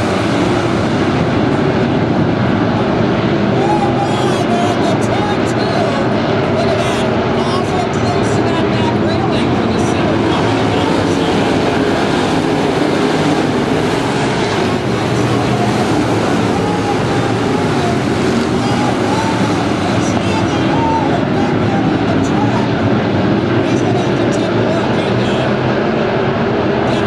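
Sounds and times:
race car engines roaring: 0.0 - 27.0.

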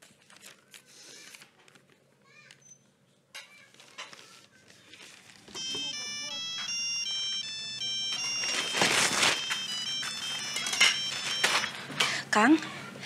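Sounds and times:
paper rustling: 0.0 - 2.0, 3.6 - 5.7, 8.1 - 11.8
mobile phone ringtone: 5.5 - 12.0.

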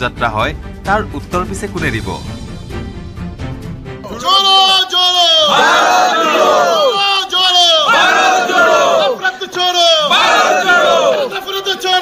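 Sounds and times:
men shouting together: 4.0 - 12.0.

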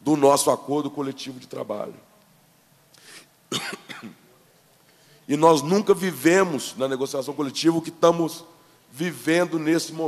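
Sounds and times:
man coughing into microphone: 3.5 - 4.3.

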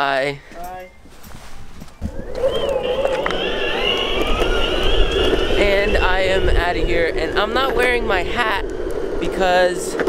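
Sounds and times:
wheels rumbling on pavement: 1.0 - 10.0
electric motor whine: 1.8 - 9.3.

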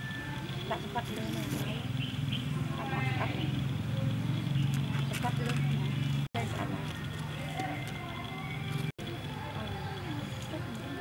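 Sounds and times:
indistinct voices: 0.0 - 11.0.

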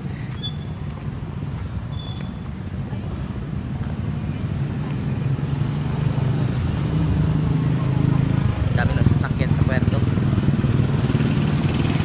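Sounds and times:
low road rumble: 0.0 - 12.0.

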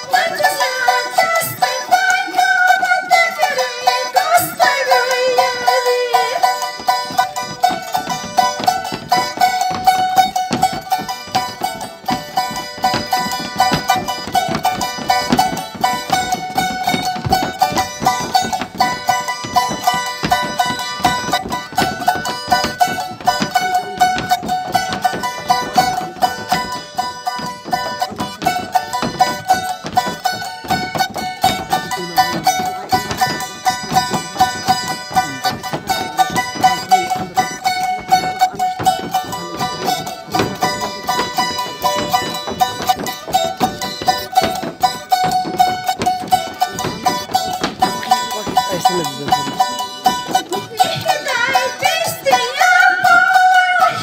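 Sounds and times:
woman singing: 0.0 - 6.8, 50.6 - 54.0
fast strummed guitar: 6.4 - 52.4.

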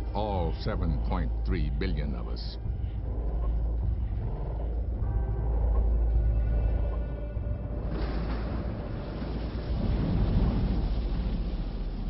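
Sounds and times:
thunder rumbling: 7.7 - 12.0.

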